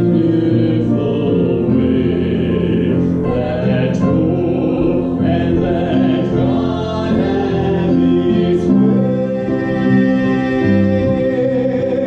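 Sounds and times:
man singing a hymn: 0.0s - 12.0s
piano accompaniment: 0.0s - 12.0s.

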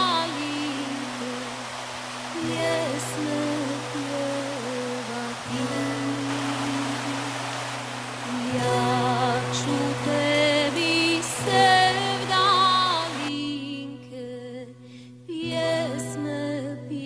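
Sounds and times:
slow wandering melody: 0.0s - 17.0s.

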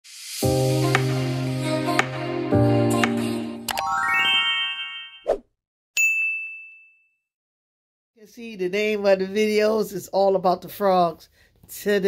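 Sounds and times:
rising chime tones: 3.7s - 5.3s
bright bell ding: 6.0s - 7.2s.

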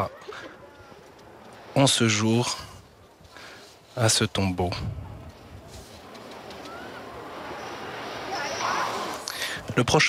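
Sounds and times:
faint outdoor background noise: 0.0s - 10.0s.

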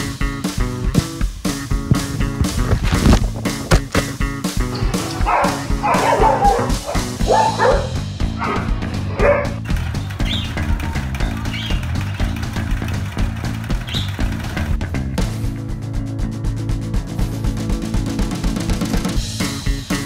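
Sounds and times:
background music: 0.0s - 20.0s
dogs barking and yipping: 4.7s - 12.4s.

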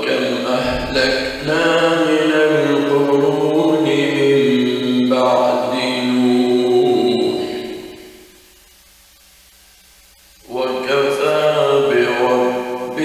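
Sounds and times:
man chanting melodically: 0.0s - 8.0s, 10.4s - 13.0s.

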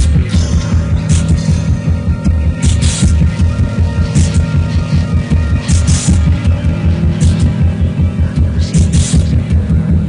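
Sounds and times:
low bass pulse: 0.0s - 10.0s
steady droning tones: 0.0s - 10.0s.

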